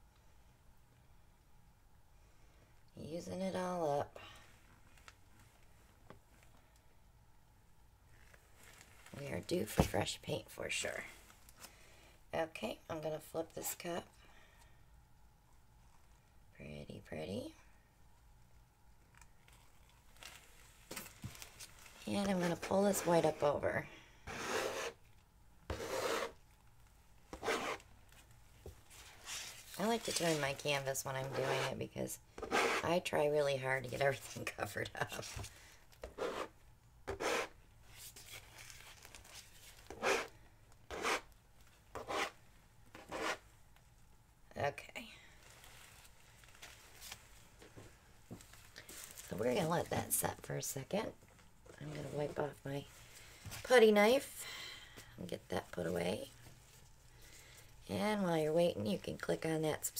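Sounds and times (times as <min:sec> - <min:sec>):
putty knife scraping paint: 0:24.3 - 0:25.0, 0:25.7 - 0:26.4, 0:27.4 - 0:27.8, 0:31.3 - 0:31.8, 0:32.4 - 0:32.8, 0:36.1 - 0:36.5, 0:37.1 - 0:37.6, 0:39.9 - 0:40.3, 0:40.9 - 0:41.3, 0:42.0 - 0:42.4, 0:43.0 - 0:43.4.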